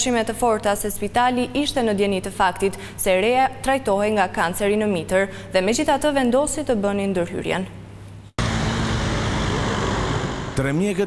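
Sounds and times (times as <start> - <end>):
city road traffic: 8.4 - 10.7.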